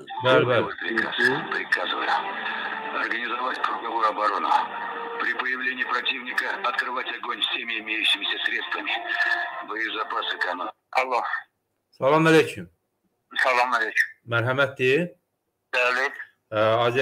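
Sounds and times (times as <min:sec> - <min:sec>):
speech over radio line: 0:00.0 - 0:11.5, 0:13.3 - 0:14.2, 0:15.7 - 0:16.4.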